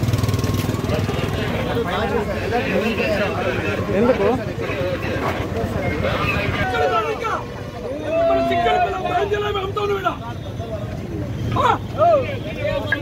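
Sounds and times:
crowd chatter: 0.0s - 13.0s
voices talking over one another: 0.7s - 13.0s.

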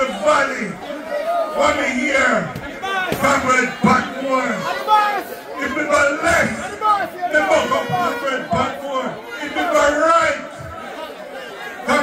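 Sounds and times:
man speaking into amplified microphone: 0.0s - 12.0s
voices chattering: 0.0s - 12.0s.

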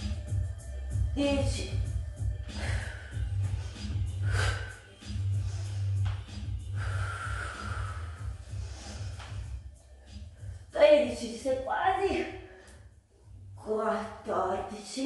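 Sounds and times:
jazz hip-hop music: 0.0s - 12.2s
woman breathing forcefully: 1.7s - 10.8s.

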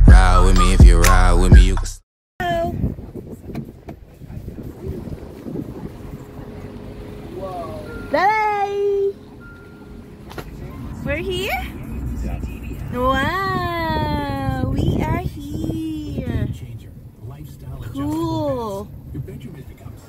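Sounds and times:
car cabin road rumble: 2.4s - 20.0s.

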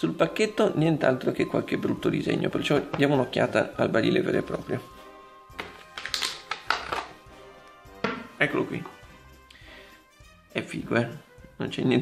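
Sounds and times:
soft background music: 0.0s - 12.0s
plastic blister pack taps: 5.6s - 7.2s.

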